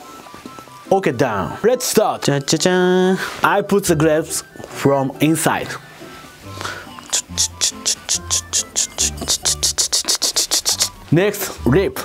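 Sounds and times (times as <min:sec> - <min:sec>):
quiet background music: 0:00.0 - 0:12.0
brush scratching inside ceramic cup: 0:07.2 - 0:11.0.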